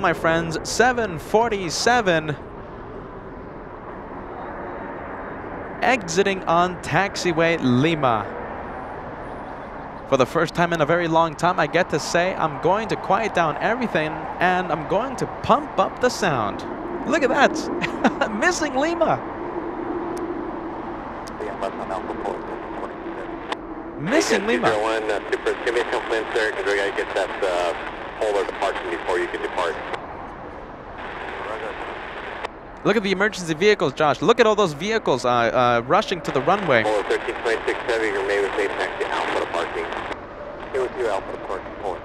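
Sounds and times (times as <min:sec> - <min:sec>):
man's voice: 0:00.0 - 0:02.4, 0:05.8 - 0:08.3, 0:10.1 - 0:19.2, 0:21.3 - 0:23.3, 0:24.0 - 0:30.0, 0:31.4 - 0:31.8, 0:32.9 - 0:40.0, 0:40.8 - 0:42.0
jet engine rush: 0:10.1 - 0:32.8, 0:35.9 - 0:42.0.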